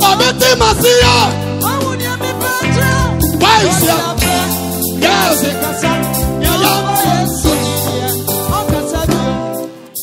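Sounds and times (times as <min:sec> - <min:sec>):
person singing: 0:00.0 - 0:09.8
live gospel band music: 0:00.0 - 0:10.0
drum strokes: 0:00.7 - 0:09.2.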